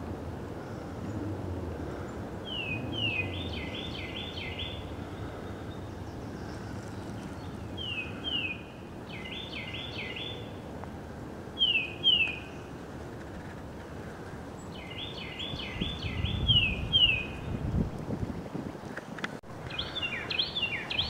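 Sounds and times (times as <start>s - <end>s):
low background rumble: 0.0s - 18.8s
songbird singing: 0.0s - 21.0s.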